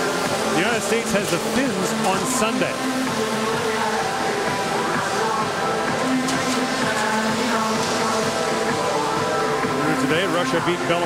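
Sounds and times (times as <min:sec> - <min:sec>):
crowd noise: 0:00.0 - 0:11.0
music with sustained notes: 0:00.0 - 0:11.0.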